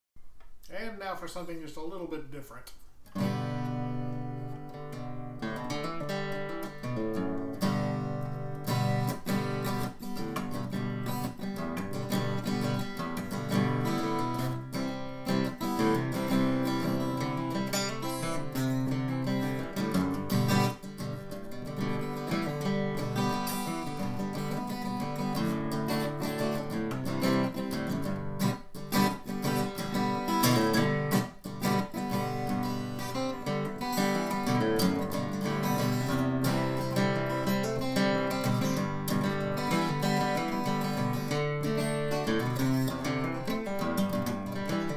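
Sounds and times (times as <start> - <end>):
acoustic guitar strummed and picked: 3.0 - 44.9.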